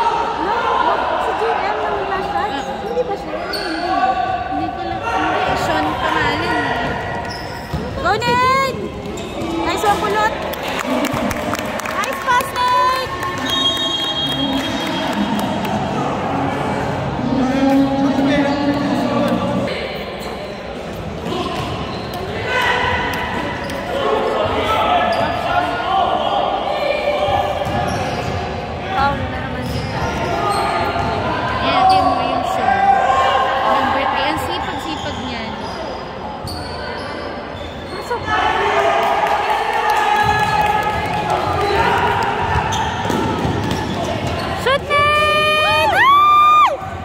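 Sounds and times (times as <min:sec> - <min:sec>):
sneakers squeaking on court: 0:05.4 - 0:10.2, 0:20.2 - 0:22.3, 0:27.3 - 0:28.5, 0:29.1 - 0:31.2, 0:34.3 - 0:38.2, 0:42.4 - 0:44.9
basketball bouncing on gym floor: 0:42.4 - 0:45.0.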